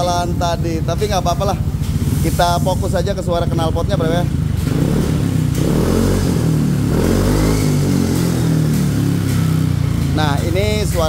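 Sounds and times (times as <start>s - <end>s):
scooter engine revving: 0.0s - 11.0s.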